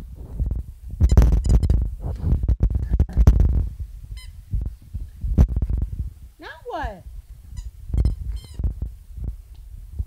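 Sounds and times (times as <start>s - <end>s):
puppy thumping and rubbing toy: 7.4s - 8.9s
squeaky toy squeak: 8.0s - 8.6s.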